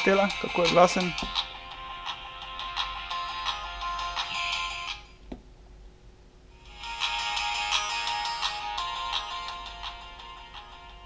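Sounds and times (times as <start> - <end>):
music through phone speaker: 0.0 - 5.1, 6.6 - 11.0.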